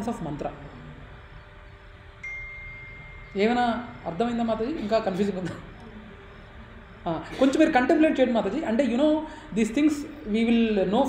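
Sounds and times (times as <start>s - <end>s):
low room noise: 0.0s - 11.0s
steady high tone: 2.1s - 8.2s.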